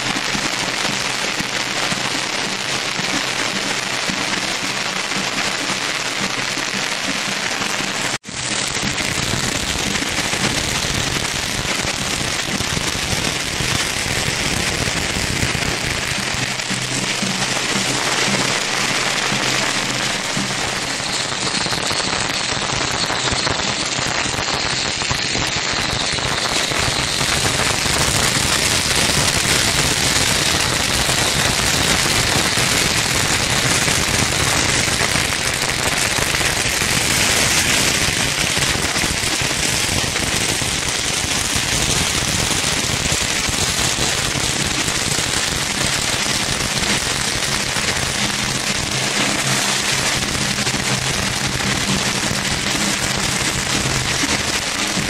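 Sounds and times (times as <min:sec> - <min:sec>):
firecrackers crackling: 0:00.0 - 0:55.0.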